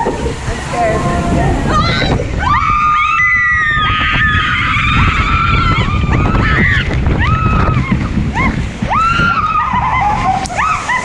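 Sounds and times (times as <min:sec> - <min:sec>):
people screaming: 0:00.0 - 0:11.0
wind and water rushing: 0:00.0 - 0:11.0.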